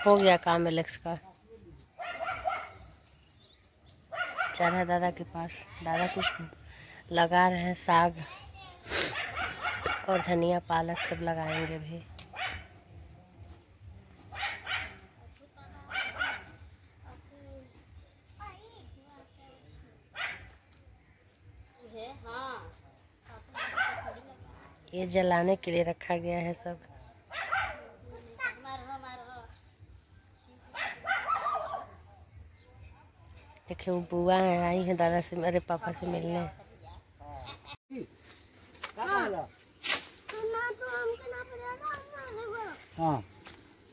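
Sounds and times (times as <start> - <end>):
dog barking: 2.0 - 2.9, 4.1 - 4.9, 5.9 - 6.6, 9.1 - 12.8, 14.3 - 15.2, 15.9 - 16.6, 20.1 - 20.6, 23.5 - 24.2, 27.3 - 28.0, 30.7 - 32.1.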